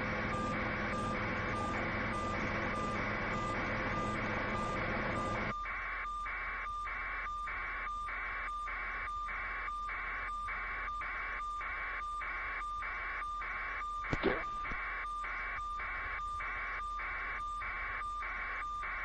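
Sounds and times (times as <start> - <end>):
vehicle backup alarm beeping: 0.1 - 19.0.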